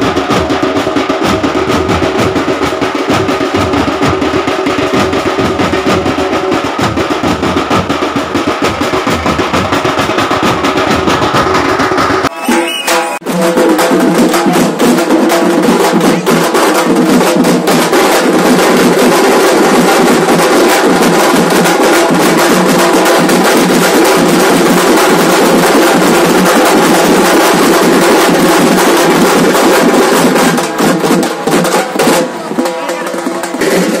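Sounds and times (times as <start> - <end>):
group drumming fast rhythm: 0.0 - 34.0
crowd voices: 30.6 - 34.0.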